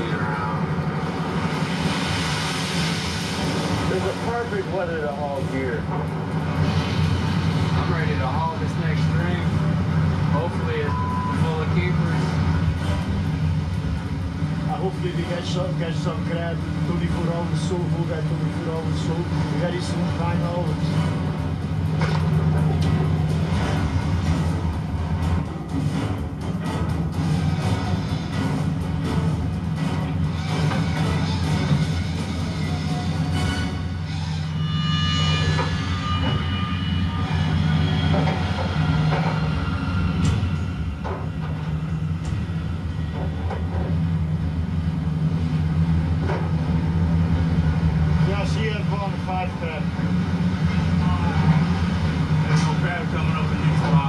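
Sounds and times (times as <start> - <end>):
background music: 0.0 - 54.0
steady low drone: 0.0 - 54.0
gear knocking and clanking: 11.7 - 32.6.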